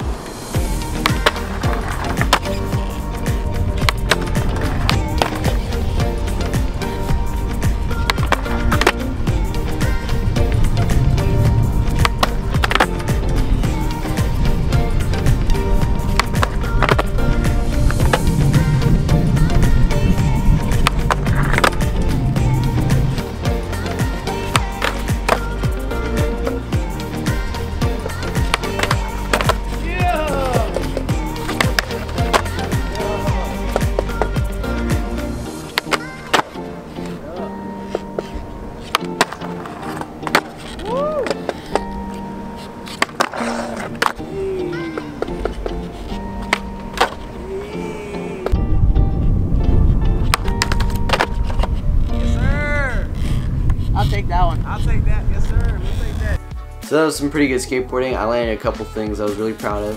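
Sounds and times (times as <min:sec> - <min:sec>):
background music: 0:00.0 - 0:54.8, 0:55.8 - 0:59.9
skateboard wheels rolling on concrete: 0:00.0 - 0:59.9
skateboard pops and landings: 0:00.7 - 0:06.7, 0:07.6 - 0:14.4, 0:15.2 - 0:18.8, 0:19.4 - 0:23.2, 0:23.8 - 0:26.5, 0:27.3 - 0:29.8, 0:30.5 - 0:37.2, 0:37.9 - 0:42.0, 0:42.9 - 0:44.2, 0:44.9 - 0:47.3, 0:50.2 - 0:51.8.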